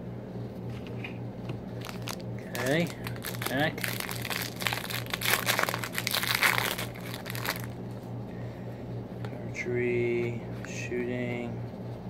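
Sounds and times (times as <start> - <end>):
handling of cards: 1.8 - 7.8
wrapper torn and crinkled: 1.8 - 7.8.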